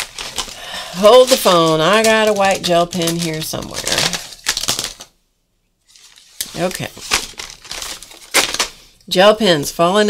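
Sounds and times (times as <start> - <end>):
plastic pens clattering: 0.0 - 5.1.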